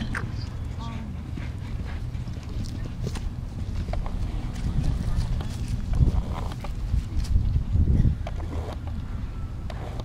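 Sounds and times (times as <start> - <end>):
steady low rumble: 0.0 - 9.7.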